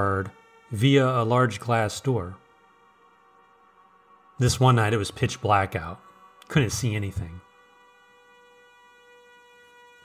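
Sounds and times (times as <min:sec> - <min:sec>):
ambient music drone: 0:00.0 - 0:10.0.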